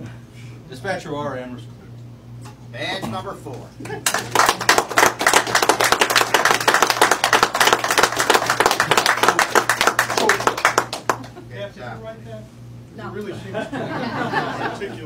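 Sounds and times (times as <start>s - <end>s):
people applauding: 4.0s - 11.4s.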